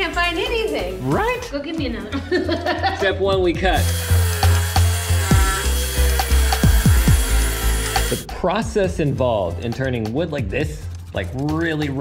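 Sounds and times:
table saw ripping wood: 3.8 - 8.3.

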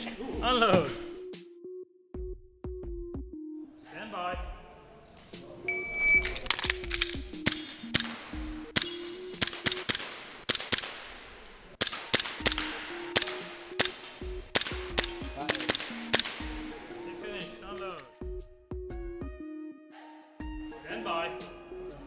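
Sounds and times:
background music with bass line: 0.0 - 3.7, 12.4 - 19.8
airsoft pistol firing sharp pops: 7.0 - 16.5.

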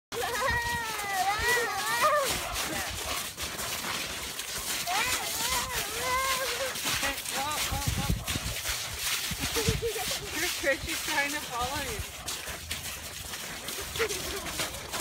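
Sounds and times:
footsteps in snow and slush: 0.1 - 15.0.

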